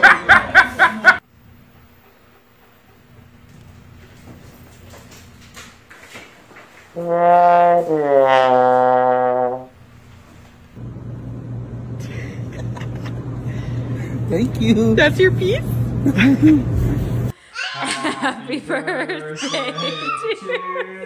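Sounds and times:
comedy brass wah-wah sting: 0:07.0 - 0:09.7.

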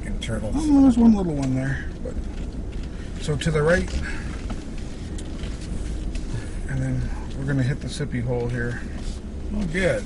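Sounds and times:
truck engine rumble: 0:00.0 - 0:10.0.

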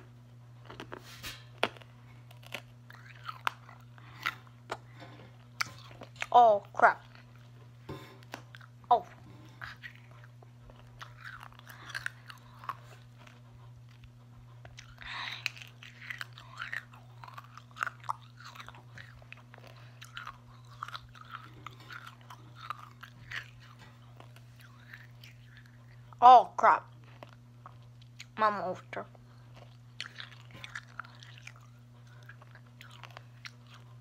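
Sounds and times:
steady low hum: 0:00.0 - 0:34.0
candy being sucked and chewed: 0:00.6 - 0:06.3, 0:08.3 - 0:26.2.

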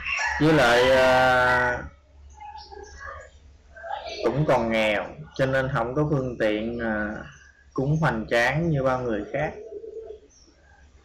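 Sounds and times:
faint scattered sounds: 0:00.0 - 0:11.0.

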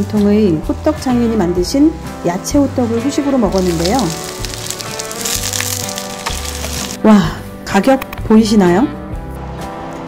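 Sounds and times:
pancake sizzling in oil: 0:03.5 - 0:07.0.

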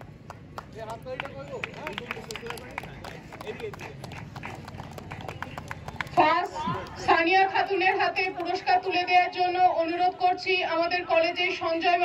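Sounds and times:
light scattered clapping: 0:00.0 - 0:08.6
faint voices: 0:00.8 - 0:12.0.

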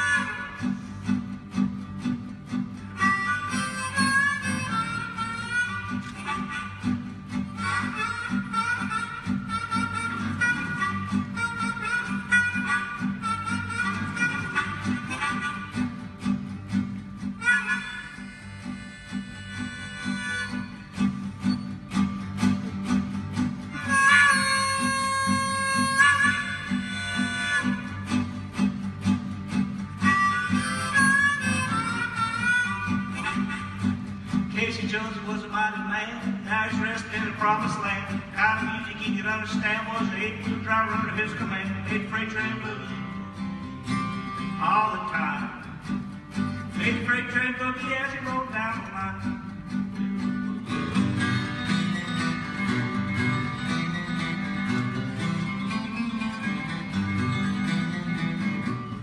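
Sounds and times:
acoustic guitar bass line: 0:00.0 - 0:59.0
harmonica melody: 0:00.0 - 0:59.0.

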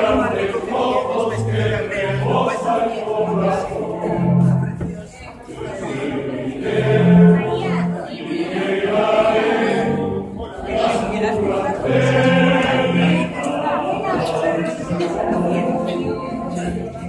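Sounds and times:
choir singing in a church: 0:00.0 - 0:17.0.

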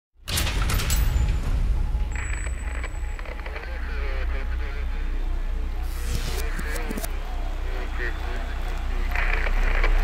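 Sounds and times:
indistinct voices: 0:02.2 - 0:10.0.

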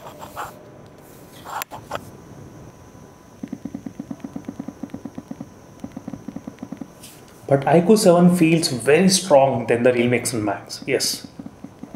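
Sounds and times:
phone vibration motor buzzing: 0:00.0 - 0:11.9.

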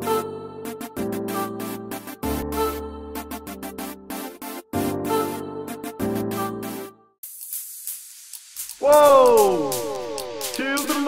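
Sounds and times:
steady high hiss with ticks: 0:07.2 - 0:11.0
man singing whoa: 0:08.8 - 0:11.0.

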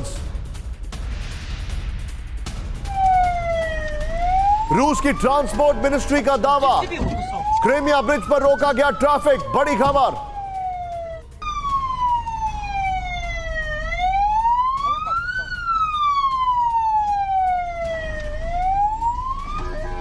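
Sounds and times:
siren wailing: 0:02.9 - 0:20.0.

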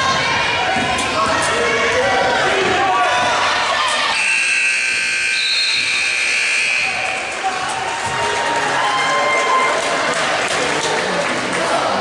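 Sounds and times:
scoreboard horn buzzing: 0:04.1 - 0:07.4.

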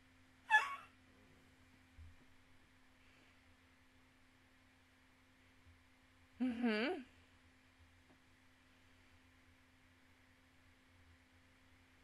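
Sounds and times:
woman squealing: 0:00.5 - 0:00.9.

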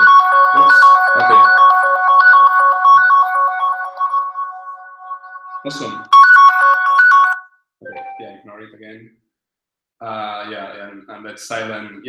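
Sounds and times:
phone ringtone melody: 0:00.0 - 0:08.4.

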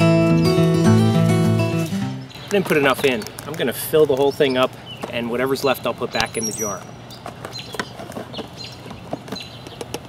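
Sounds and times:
bird calling high notes: 0:06.1 - 0:06.9.

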